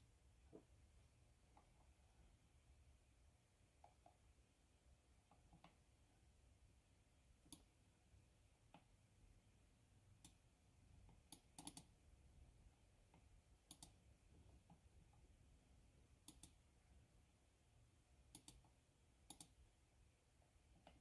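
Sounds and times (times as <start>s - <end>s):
faint computer mouse clicks: 7.4s - 7.7s, 10.2s - 10.4s, 11.1s - 11.9s, 13.1s - 14.0s, 16.2s - 16.6s, 18.3s - 19.6s.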